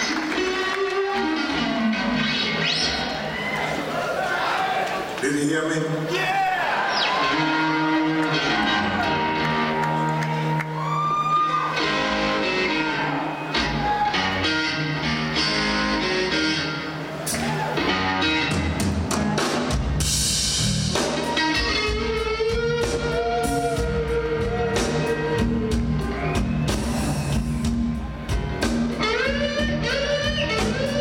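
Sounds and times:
electric guitar lead lines: 0.0s - 3.8s, 6.9s - 31.0s
drums: 0.0s - 4.0s, 6.1s - 31.0s
bass: 7.0s - 31.0s.

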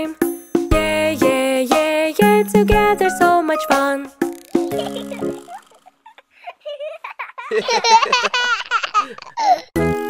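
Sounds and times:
children's song: 0.0s - 5.6s
children giggling: 4.7s - 9.7s.

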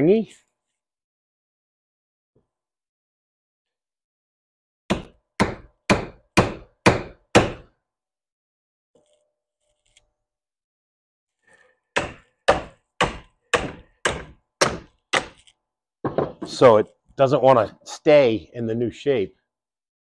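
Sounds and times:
hammer striking steel bar: 12.0s - 15.4s.

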